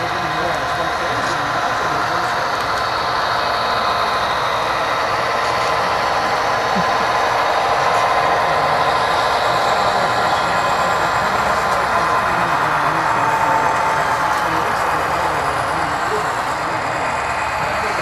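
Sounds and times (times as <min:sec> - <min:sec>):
model train diesel engine sound: 0:00.0 - 0:18.0.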